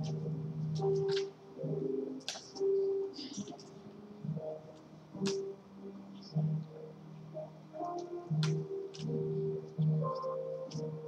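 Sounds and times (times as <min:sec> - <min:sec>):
slow keyboard music: 0:00.0 - 0:11.0.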